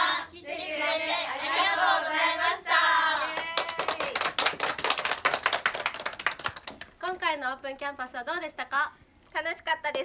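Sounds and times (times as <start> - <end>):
people clapping: 3.0 - 7.0.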